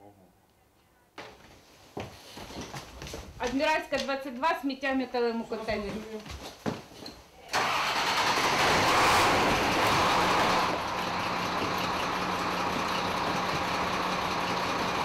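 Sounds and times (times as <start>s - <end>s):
fire truck engine starting and idling: 7.5s - 15.0s.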